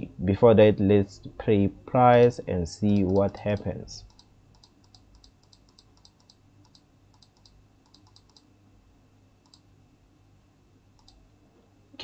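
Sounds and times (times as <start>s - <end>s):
computer mouse clicks: 3.0s - 8.5s, 9.4s - 9.7s, 11.0s - 11.2s.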